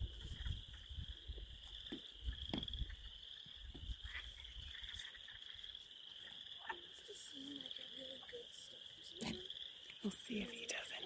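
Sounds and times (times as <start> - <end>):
chorus of frogs calling: 0.0 - 11.0.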